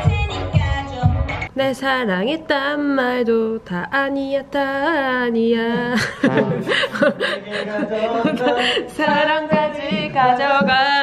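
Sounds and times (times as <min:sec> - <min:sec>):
person chuckling: 0:05.8 - 0:09.0.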